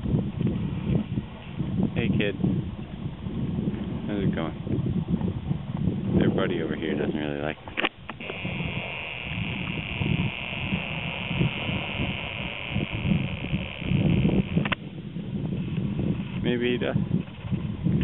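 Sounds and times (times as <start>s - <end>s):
low wind rumble: 0.0s - 18.0s
zoom motor click: 7.8s - 14.8s
camera zoom motor whirring: 8.1s - 14.8s.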